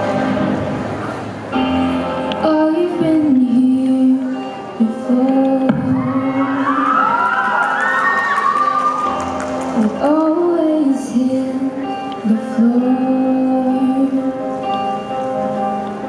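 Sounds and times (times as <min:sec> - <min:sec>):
backing track music: 0:00.0 - 0:16.0
woman singing pop ballad: 0:02.3 - 0:07.2, 0:09.8 - 0:14.9
audience cheering and whooping: 0:05.9 - 0:09.9.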